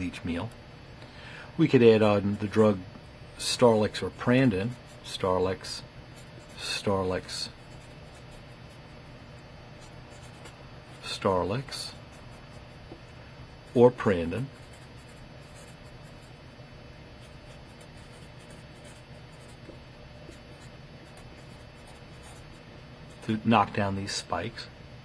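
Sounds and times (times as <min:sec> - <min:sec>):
marker scratching on paper: 0:06.1 - 0:09.0, 0:09.8 - 0:13.0, 0:13.7 - 0:16.4, 0:17.2 - 0:23.4.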